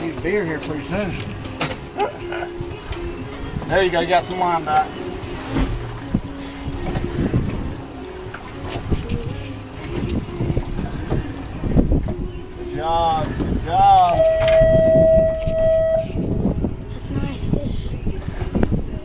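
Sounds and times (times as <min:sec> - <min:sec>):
boat engine offshore: 0:00.0 - 0:19.0
wind buffeting microphone: 0:00.0 - 0:19.0
wavering pitched calls: 0:14.0 - 0:16.2
steady held tone: 0:14.1 - 0:16.2.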